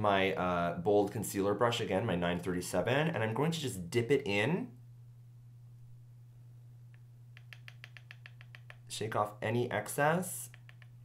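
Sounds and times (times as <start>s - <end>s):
makeup brush clicking on jar: 7.3s - 8.9s, 10.5s - 11.0s.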